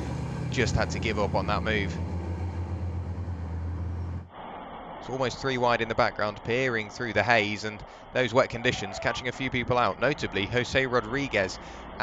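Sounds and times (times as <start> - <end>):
diesel truck engines droning: 0.0 - 4.3, 5.1 - 12.0.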